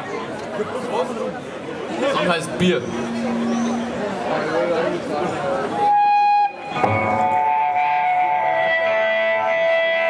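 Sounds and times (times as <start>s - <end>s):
electric guitar ringing notes: 2.6s - 5.1s, 5.7s - 10.0s.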